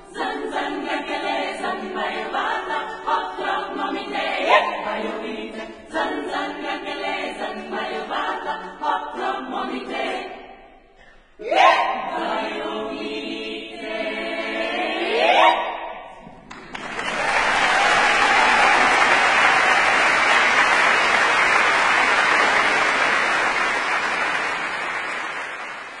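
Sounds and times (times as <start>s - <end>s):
choir singing a cappella: 0.0s - 16.3s
audience applauding: 16.3s - 26.0s.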